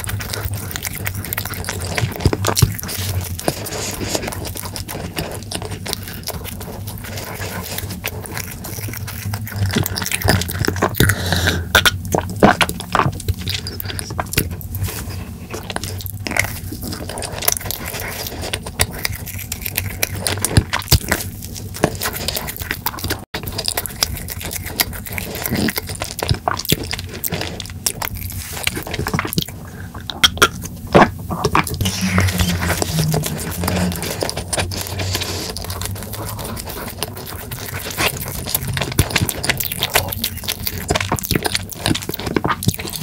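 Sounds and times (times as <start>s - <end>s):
biting into soft cake: 0.0s - 43.0s
wet chewing sounds: 0.0s - 43.0s.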